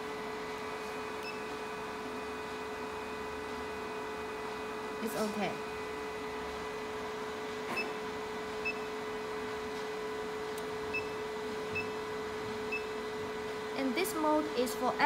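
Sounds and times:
machine humming: 0:00.0 - 0:15.0.

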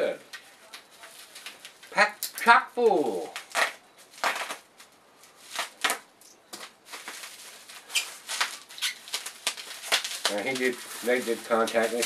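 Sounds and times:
plastic wrap rustling: 0:00.0 - 0:02.2, 0:02.8 - 0:12.0.

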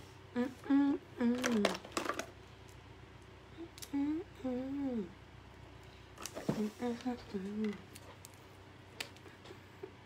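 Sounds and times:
woman humming a tune: 0:00.3 - 0:01.8, 0:03.5 - 0:05.2.

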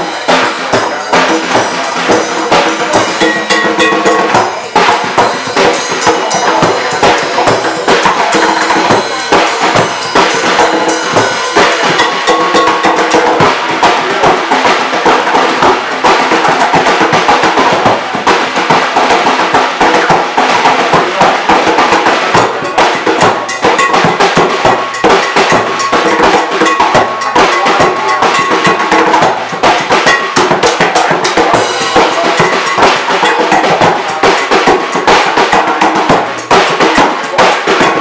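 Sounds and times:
cajon hand drumming: 0:00.0 - 0:38.0
drum kit playing fast rhythm: 0:00.0 - 0:38.0.

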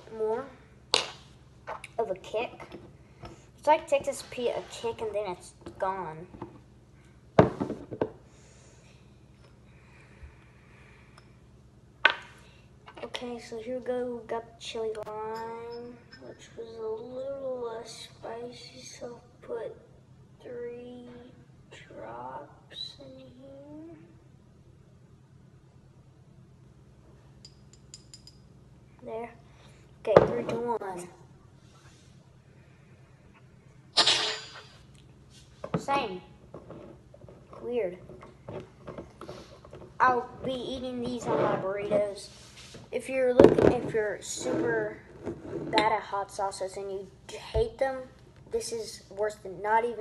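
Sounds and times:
faint room hum: 0:00.0 - 0:50.0.

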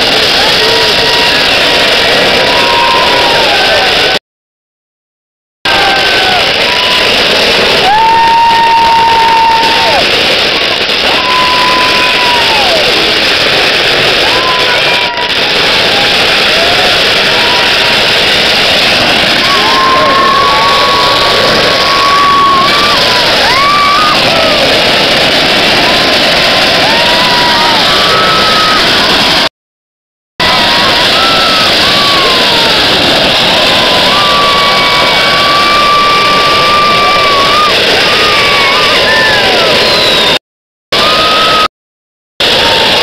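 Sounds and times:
firecrackers crackling: 0:00.0 - 0:04.2, 0:05.7 - 0:29.5, 0:30.4 - 0:40.4, 0:41.0 - 0:41.7, 0:42.4 - 0:43.0.

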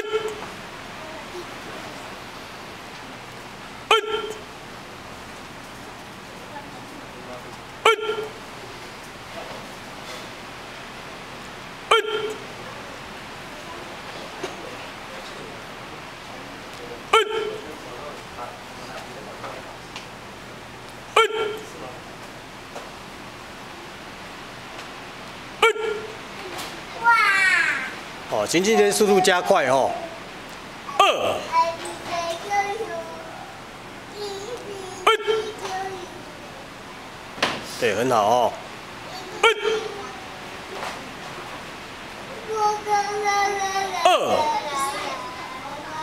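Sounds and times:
steady background hiss: 0:00.0 - 0:46.0
sharp martial arts shouts: 0:03.9 - 0:04.4, 0:30.9 - 0:31.5, 0:35.1 - 0:35.6, 0:39.4 - 0:39.9
person shouting: 0:30.9 - 0:31.5, 0:35.0 - 0:35.6, 0:39.4 - 0:40.0, 0:43.9 - 0:44.9.

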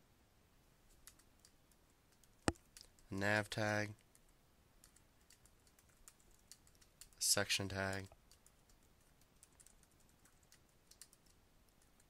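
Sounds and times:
computer keyboard typing: 0:01.0 - 0:03.1, 0:04.1 - 0:12.0.

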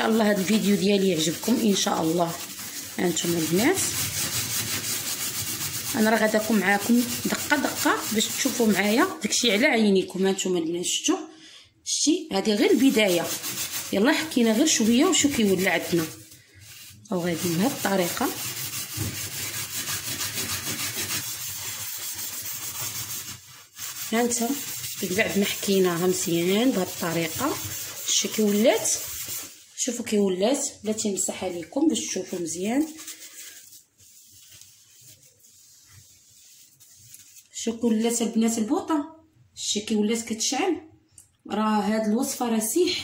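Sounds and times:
scouring pad scrubbing metal pan: 0:00.0 - 0:09.7, 0:12.4 - 0:30.2, 0:30.9 - 0:38.1.

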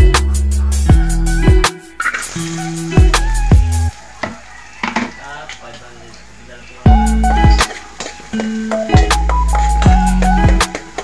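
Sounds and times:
onion sizzling in oil: 0:02.0 - 0:04.2, 0:07.0 - 0:11.0.

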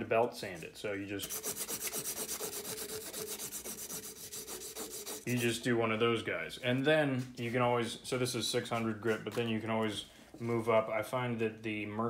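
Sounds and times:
sanding belt rasping: 0:01.2 - 0:05.4.

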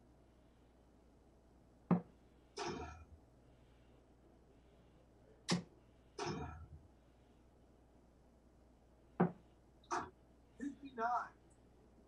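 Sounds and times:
dart striking dartboard: 0:01.9 - 0:03.0, 0:05.5 - 0:06.6.

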